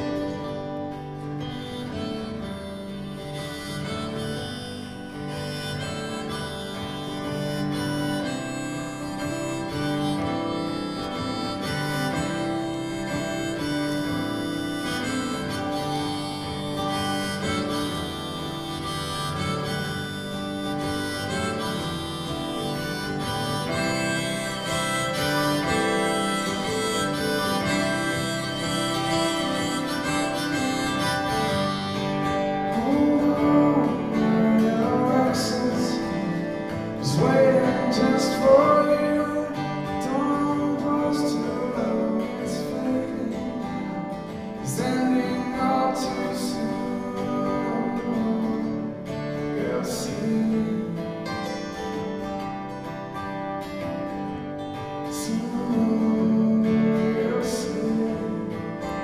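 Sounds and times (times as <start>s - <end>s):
acoustic guitars: 0.0s - 59.0s
harmonica playing: 0.0s - 59.0s.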